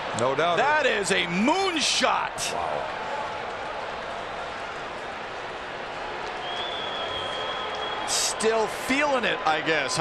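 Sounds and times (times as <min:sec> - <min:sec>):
crowd cheering and applause: 0:00.0 - 0:10.0.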